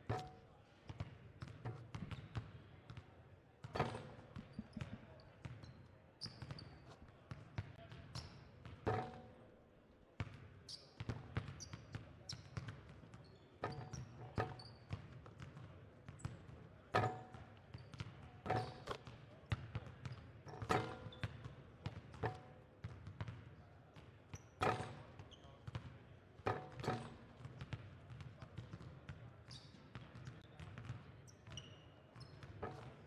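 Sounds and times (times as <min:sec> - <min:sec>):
basketballs bouncing on wooden floor: 0:01.0 - 0:02.6, 0:03.7 - 0:05.6, 0:13.7 - 0:25.9, 0:26.5 - 0:29.2, 0:29.9 - 0:33.0
sneakers squeaking: 0:01.0 - 0:02.6, 0:03.7 - 0:07.0, 0:10.7 - 0:23.3, 0:24.3 - 0:25.9, 0:29.5 - 0:33.0.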